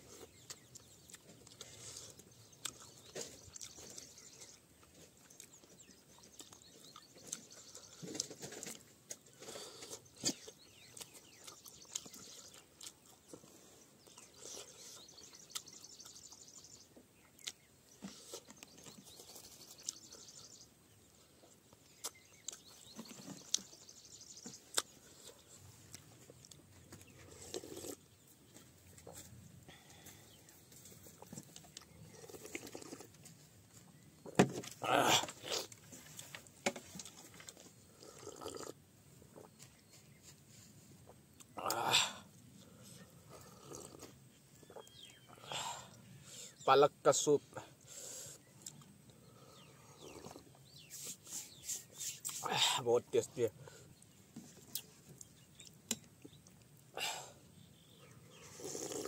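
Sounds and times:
small birds chirping: 0.0 - 59.0
chewing and lip smacks: 0.1 - 8.3, 9.8 - 16.6, 17.2 - 20.4, 21.7 - 23.8, 24.5 - 28.2, 31.1 - 33.2, 48.5 - 49.0, 54.0 - 56.9.

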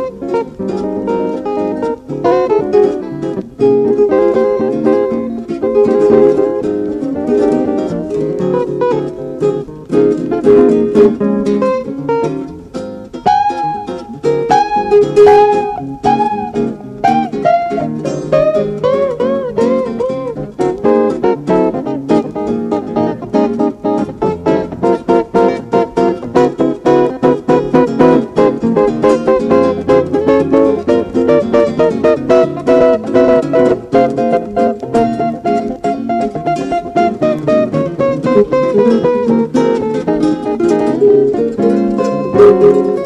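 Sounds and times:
bent guitar notes: 0.0 - 43.0
plucked guitar notes: 0.0 - 43.0.

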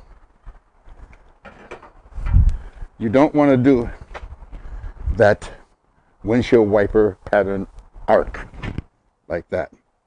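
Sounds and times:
faint footsteps: 0.0 - 3.0, 3.7 - 6.2.

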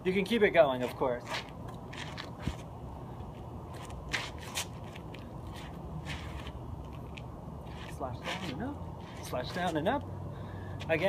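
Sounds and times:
shoes scuffing on asphalt: 0.8 - 10.0, 10.7 - 11.0
staff swishing through air: 3.7 - 7.1, 7.7 - 9.8.

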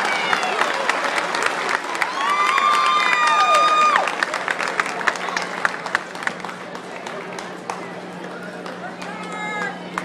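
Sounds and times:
crowd applauding and cheering: 0.0 - 10.0.

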